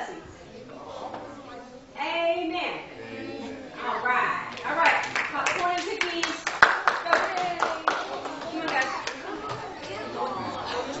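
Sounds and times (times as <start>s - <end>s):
children and adults talking: 0.0s - 11.0s
hand clapping: 4.5s - 10.0s.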